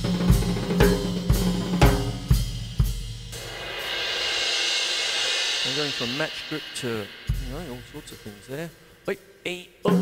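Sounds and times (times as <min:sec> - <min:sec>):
cymbal roll: 0:03.3 - 0:09.0
deep ringing drum strokes: 0:05.4 - 0:08.7.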